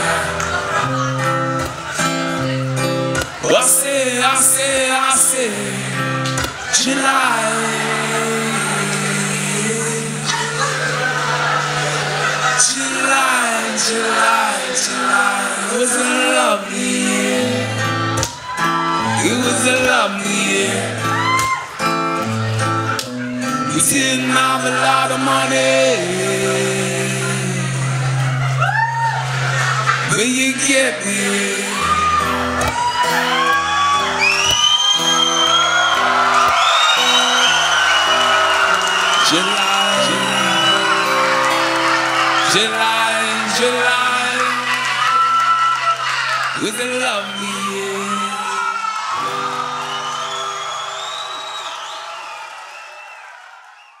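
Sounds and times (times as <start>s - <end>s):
live band holding a chord: 0.0s - 48.5s
acoustic guitar accompaniment: 0.0s - 51.6s
crowd whooping and cheering: 0.0s - 54.0s
person singing reggae: 3.3s - 11.1s, 12.6s - 18.1s, 19.0s - 21.4s, 23.6s - 28.4s, 42.4s - 45.1s
short rising and falling whoop: 28.6s - 29.3s, 31.7s - 42.6s.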